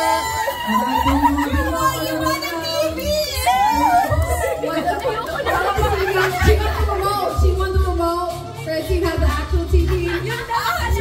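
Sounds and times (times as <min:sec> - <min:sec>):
music with pulsing bass beat: 0:03.9 - 0:11.0.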